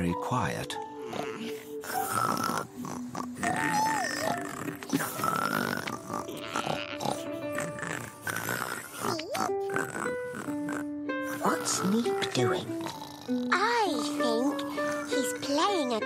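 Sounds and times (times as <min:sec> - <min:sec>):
light cartoon music: 0:00.0 - 0:16.0.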